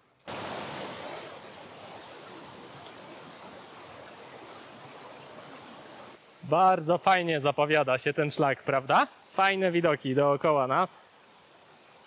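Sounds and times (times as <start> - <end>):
stream rushing over boulders: 0.1 - 12.0.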